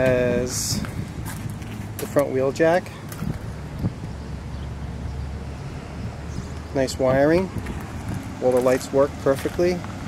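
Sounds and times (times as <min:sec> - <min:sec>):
wind rumble on microphone: 0:00.0 - 0:02.2, 0:03.0 - 0:10.0.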